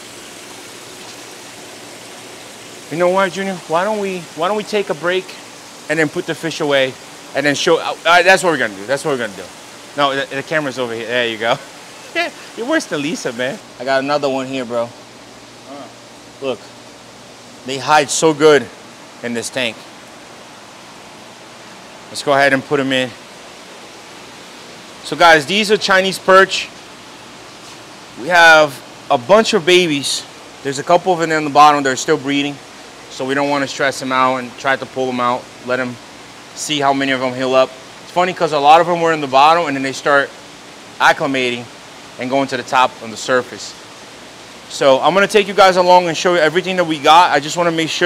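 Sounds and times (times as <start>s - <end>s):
water flowing and splashing: 0.0s - 14.8s
aquarium water circulation hiss: 0.0s - 48.0s.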